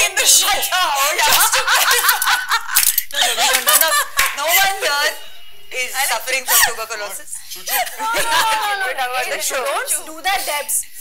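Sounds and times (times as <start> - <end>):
people talking: 0.0 - 2.4, 3.2 - 10.9
people laughing and snickering: 0.0 - 4.9, 7.7 - 9.8.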